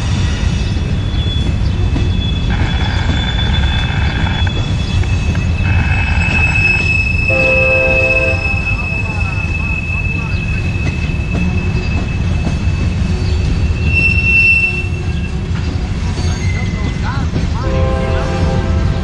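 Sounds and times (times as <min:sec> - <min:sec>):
train wheels rumbling on rail: 0:00.0 - 0:19.0
high wheel squeal: 0:00.6 - 0:17.0
train horn: 0:05.6 - 0:09.6, 0:17.6 - 0:19.0.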